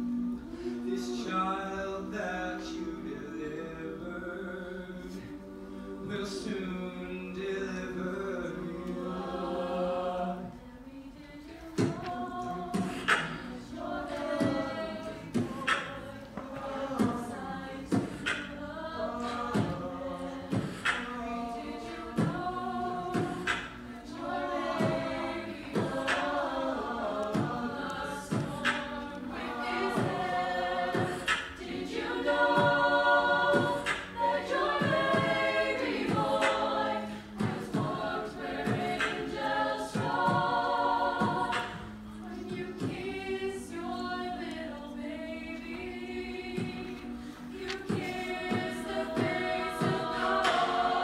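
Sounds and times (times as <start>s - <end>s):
choir singing in harmony: 0.0s - 51.0s.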